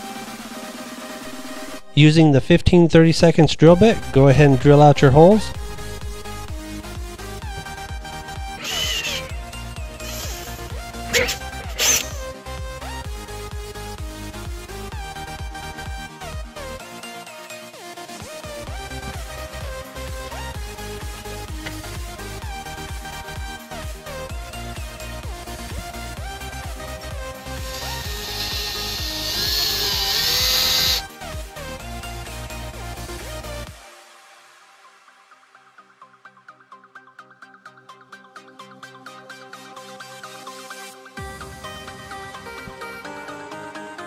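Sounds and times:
electronic music: 8.4 - 12.6, 18.4 - 37.2
cordless drill through plastic: 8.6 - 9.3, 10.0 - 12.2, 27.6 - 31.1
electronic dance music: 8.6 - 9.4, 10.0 - 12.4, 27.0 - 31.2.

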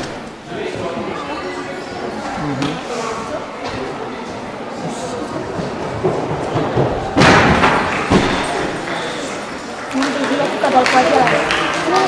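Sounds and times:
echoing chatter of voices: 0.0 - 12.0
loud thud: 6.6 - 8.8.

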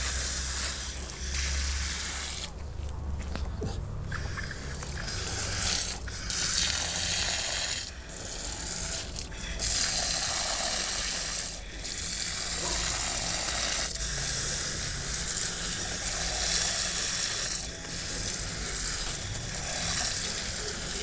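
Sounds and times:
hose water pouring into soil: 0.0 - 2.6, 4.2 - 21.0.

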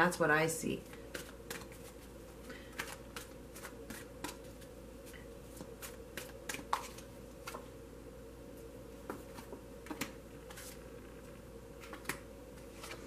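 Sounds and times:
faint steady hum: 0.0 - 13.0
cards being handled: 0.9 - 4.7, 9.0 - 10.8, 11.8 - 13.0.

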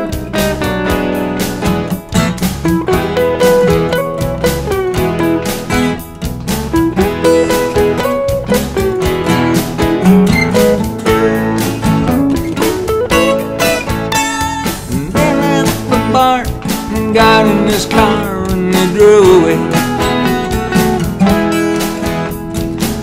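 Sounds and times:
country-rock backing track: 0.0 - 23.0
twelve-string acoustic guitar: 0.0 - 23.0.

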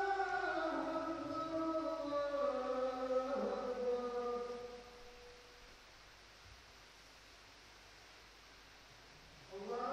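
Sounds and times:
person chanting: 0.0 - 5.0, 9.5 - 9.9
faint hiss: 0.0 - 9.9.

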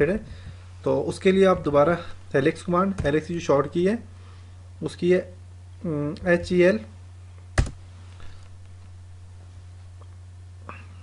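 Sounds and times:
man talking: 0.0 - 4.1, 4.8 - 6.9
low electrical hum: 0.0 - 11.0.

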